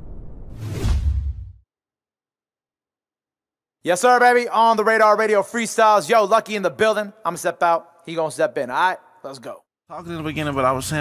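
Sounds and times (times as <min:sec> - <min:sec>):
whoosh: 0:00.0 - 0:01.6.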